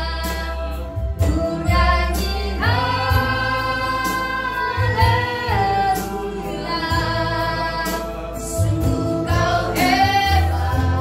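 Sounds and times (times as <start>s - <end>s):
woman singing gospel: 0.0s - 11.0s.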